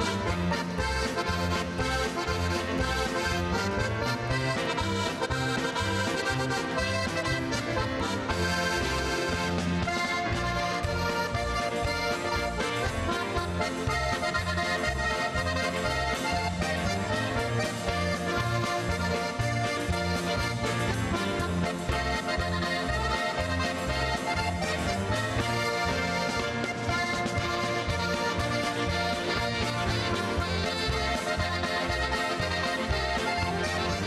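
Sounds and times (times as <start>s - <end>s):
button box accordion dance tune: 0.0s - 34.0s.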